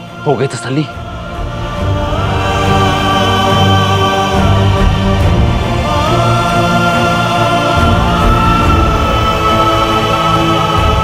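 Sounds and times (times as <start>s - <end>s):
dramatic background score: 0.0s - 11.0s.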